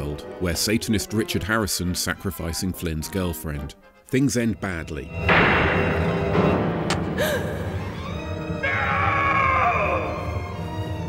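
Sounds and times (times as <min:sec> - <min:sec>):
film score music: 0:00.0 - 0:11.0
loud drawn-out falling cry: 0:08.6 - 0:10.4.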